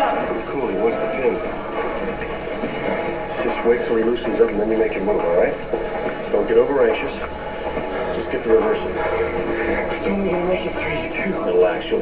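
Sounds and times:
background hubbub: 0.0 - 12.0
indistinct voices: 0.0 - 12.0
movie soundtrack through tv speaker: 0.0 - 12.0.

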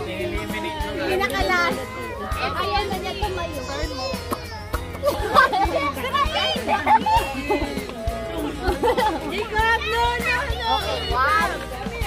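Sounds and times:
children talking and calling out: 0.0 - 12.0
music playing: 0.0 - 12.0.

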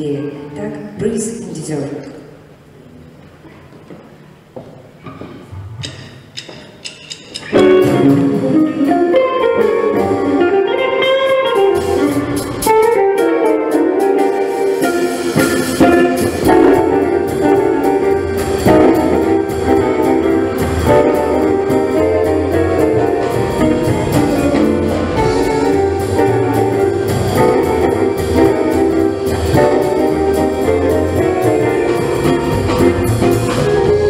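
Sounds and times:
jazz guitar ensemble playing swing: 7.2 - 34.0.

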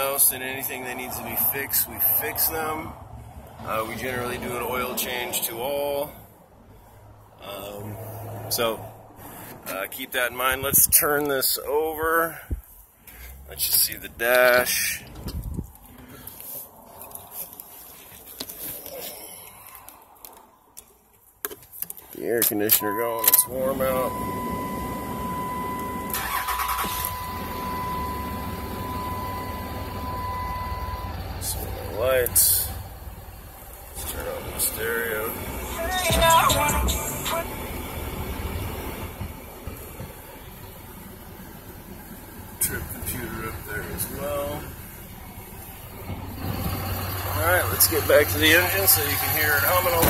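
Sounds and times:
diesel engine idling: 23.4 - 50.0.

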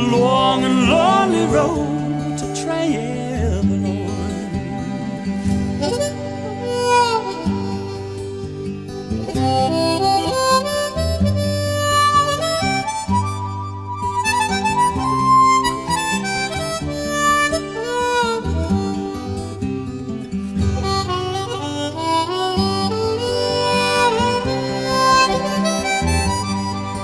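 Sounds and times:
blues harmonica solo: 0.0 - 27.0
guitar accompaniment: 0.0 - 27.0.

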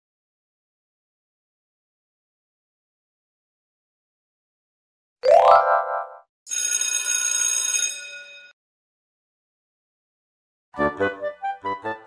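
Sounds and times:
bell ringing: 5.7 - 8.6.

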